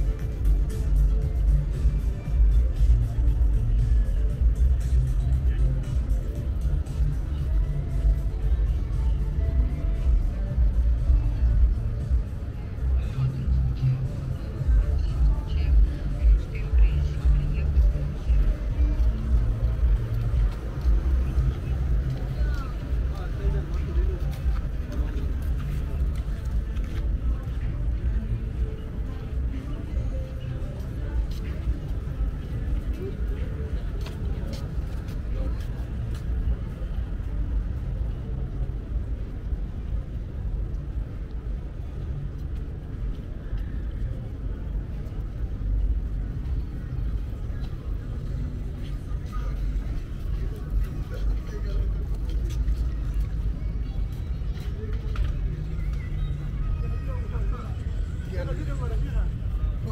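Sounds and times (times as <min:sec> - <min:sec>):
chatter of passers-by: 0:00.0 - 0:59.9
steady low rumble: 0:00.0 - 0:59.9.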